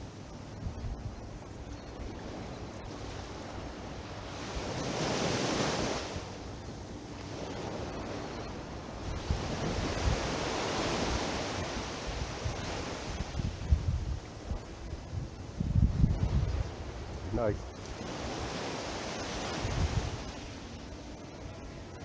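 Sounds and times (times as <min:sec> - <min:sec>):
wind buffeting microphone: 0:00.0 - 0:20.8
waves washing up a sandy shore: 0:02.1 - 0:06.5, 0:07.1 - 0:21.2.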